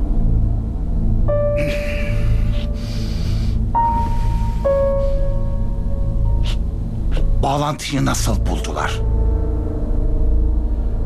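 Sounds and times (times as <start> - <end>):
dramatic score drone: 0.0 - 11.0.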